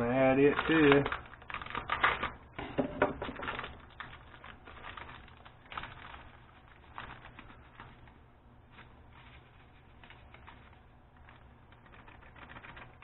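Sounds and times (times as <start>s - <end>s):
packet crinkling and rustling: 0.0s - 13.0s
knife slitting packet: 0.2s - 2.4s.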